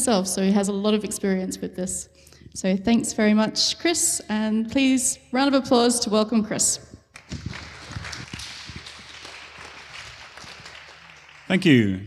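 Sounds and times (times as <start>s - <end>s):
audience applause: 7.2s - 12.0s.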